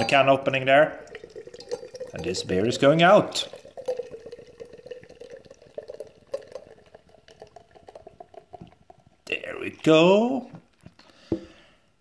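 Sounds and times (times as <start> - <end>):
beer pouring into glass: 0.0 - 10.0.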